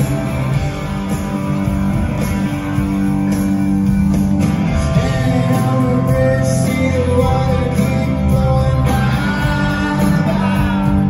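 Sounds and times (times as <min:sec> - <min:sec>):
drums: 0:00.0 - 0:11.0
electric guitars ringing chords: 0:00.0 - 0:11.0.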